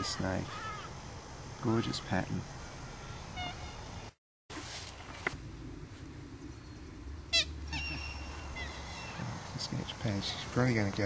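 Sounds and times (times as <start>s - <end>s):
birds calling: 0.0s - 4.2s, 6.2s - 11.0s
thin whistled bird notes: 7.7s - 9.4s.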